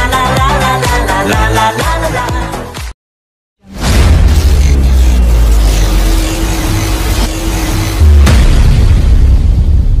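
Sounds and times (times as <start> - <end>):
loud boom with deep rumble: 8.0 - 10.0.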